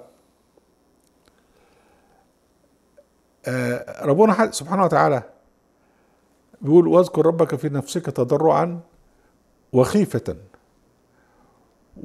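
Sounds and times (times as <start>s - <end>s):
man speaking: 3.4s - 5.4s, 6.6s - 8.9s, 9.7s - 10.5s.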